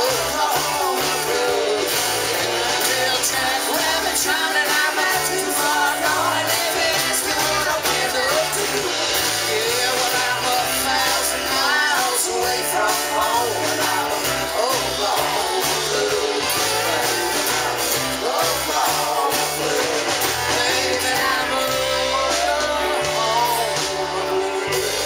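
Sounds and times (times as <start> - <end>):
acoustic guitar strumming: 0.0 - 25.0
drum kit: 0.0 - 25.0
electric guitar: 0.0 - 25.0
person singing: 0.0 - 25.0.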